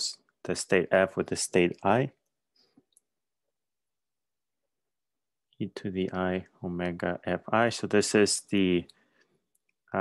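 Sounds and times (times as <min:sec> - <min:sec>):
faint small clicks: 0:08.8 - 0:09.8.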